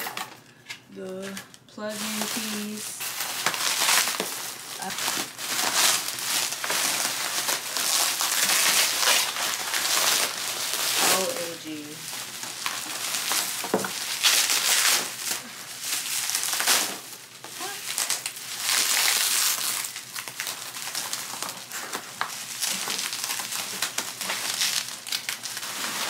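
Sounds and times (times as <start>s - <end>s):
bubble wrap crinkling and crackling: 0.0s - 26.0s.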